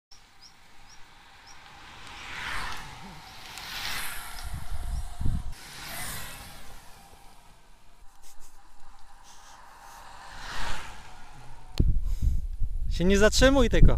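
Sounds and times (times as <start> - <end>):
wind rushing over microphone: 0.2 - 13.9.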